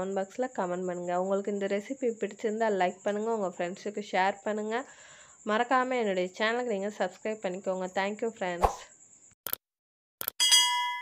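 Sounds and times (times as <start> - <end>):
bell-like notification ding: 10.4 - 11.0.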